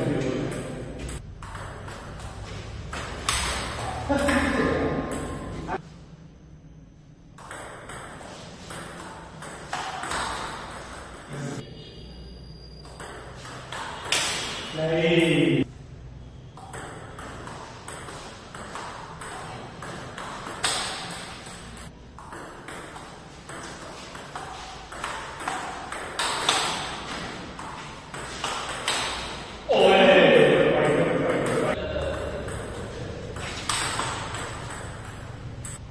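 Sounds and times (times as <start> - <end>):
table tennis ball hits: 0.3 - 5.8, 7.4 - 11.3, 12.9 - 14.7, 16.6 - 35.8
loud voice: 29.7 - 32.4.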